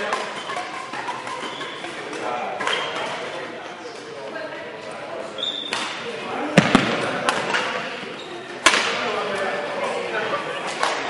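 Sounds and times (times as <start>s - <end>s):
shoe squeak: 0.3s - 2.0s, 5.4s - 5.8s, 8.1s - 8.5s.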